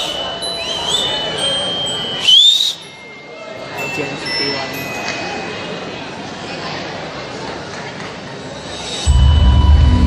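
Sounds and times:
person whistling: 0:00.0 - 0:02.9.

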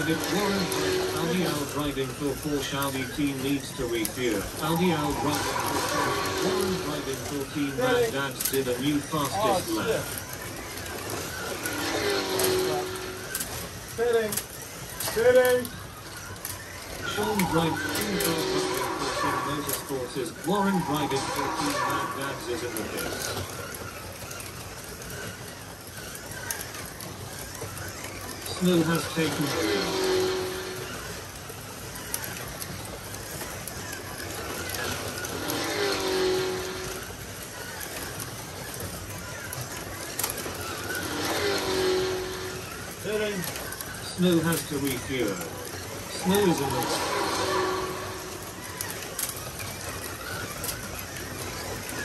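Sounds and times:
slot cars running on track: 0:00.0 - 0:52.0
voices talking: 0:00.0 - 0:52.0.

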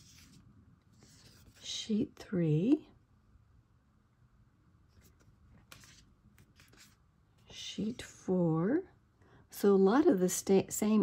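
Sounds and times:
paper sheets rustling: 0:00.0 - 0:01.6, 0:04.9 - 0:07.0.

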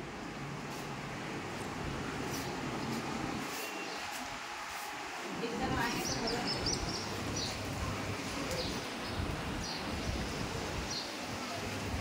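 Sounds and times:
street ambience: 0:00.0 - 0:12.0
wind rumble on microphone: 0:06.1 - 0:11.1.

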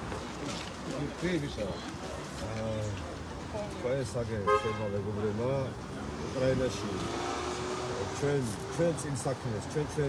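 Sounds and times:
high car horn toot: 0:04.4 - 0:04.9
man talking: 0:07.9 - 0:10.0.

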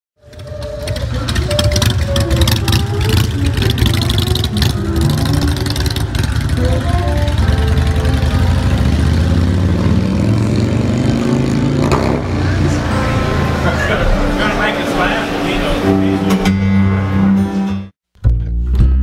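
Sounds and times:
vehicle engine rumble: 0:00.2 - 0:17.3
music playing: 0:00.6 - 0:10.0, 0:11.6 - 0:19.0.

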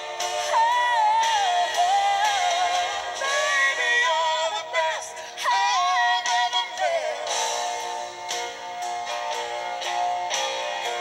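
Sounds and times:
song with vibrato vocals: 0:00.0 - 0:08.2.

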